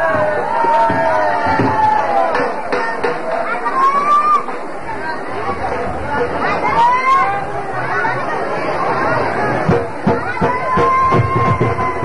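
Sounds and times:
drum beating: 0.0 - 3.3, 9.6 - 12.0
crowd talking and calling out: 0.0 - 12.0.

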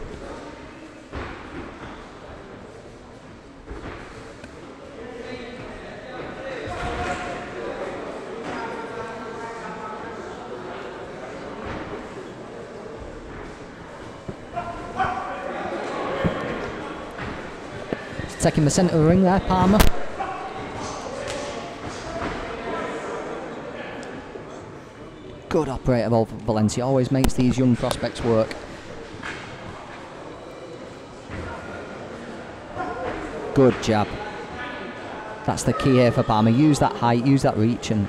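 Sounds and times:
voices shouting in echoing hall: 14.4 - 18.4, 20.0 - 24.1, 34.1 - 37.4.

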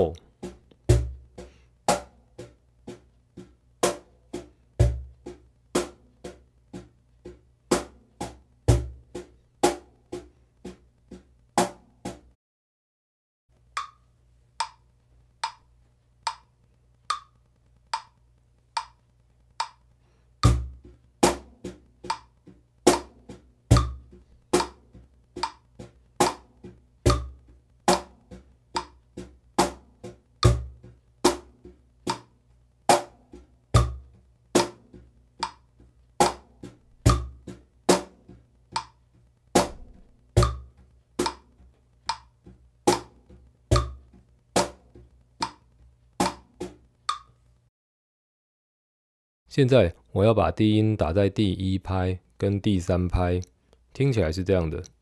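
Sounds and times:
metronome clicking: 13.7 - 20.7, 22.0 - 22.4, 25.4 - 26.4, 28.8 - 29.0, 32.1 - 32.3, 35.4 - 36.4, 38.7 - 39.0, 40.4 - 42.3, 42.9 - 44.0, 45.4 - 45.6, 47.0 - 47.4
cajon played with hands: 20.4 - 32.3, 32.9 - 39.0, 39.6 - 45.6.

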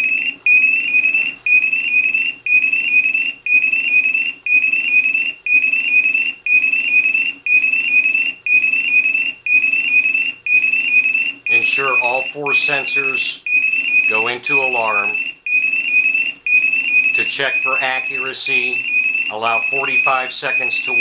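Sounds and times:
high rising alarm chirps: 0.0 - 21.0
low alarm buzz: 0.0 - 21.0.

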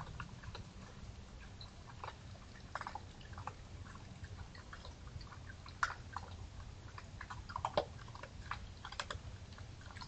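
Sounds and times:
faint low hum: 0.0 - 10.0
raccoons chewing: 0.0 - 10.0.

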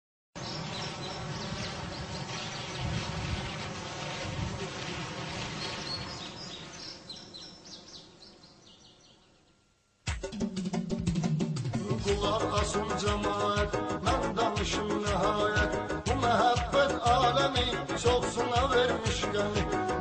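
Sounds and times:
insects buzzing: 0.4 - 9.7.

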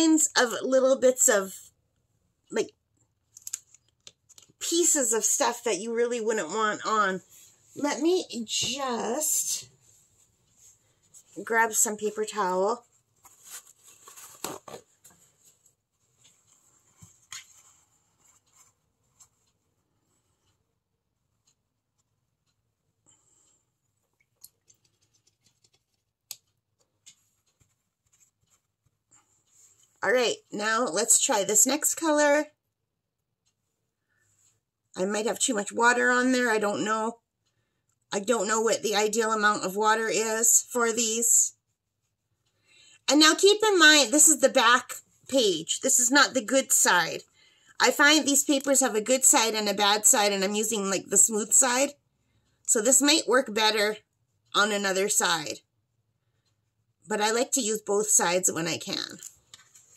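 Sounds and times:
paper towel rustling: 9.8 - 19.6
soft clicks and taps: 21.4 - 30.0.

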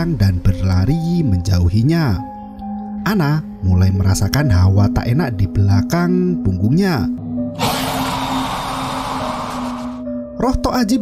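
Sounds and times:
low background music drone: 0.0 - 11.0
loud hissing rush: 7.6 - 10.0.

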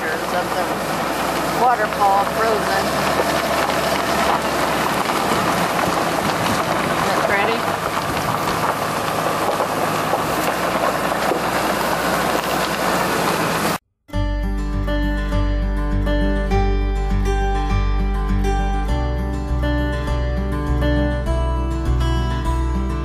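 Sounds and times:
truck road and wind noise: 0.0 - 13.8
acoustic guitar music: 0.0 - 23.0.

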